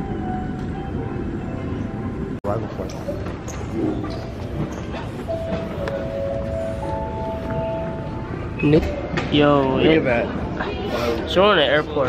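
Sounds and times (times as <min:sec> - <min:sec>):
rumble of airport terminal hall: 0:00.0 - 0:12.0.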